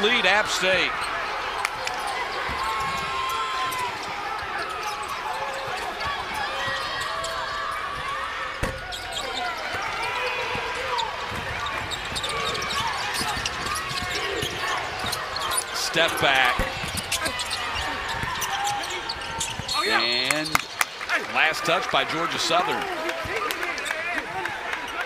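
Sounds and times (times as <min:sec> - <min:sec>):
sneakers squeaking: 0:00.0 - 0:20.7
players and crowd voices: 0:00.0 - 0:25.0
basketball dribbling: 0:10.6 - 0:18.6.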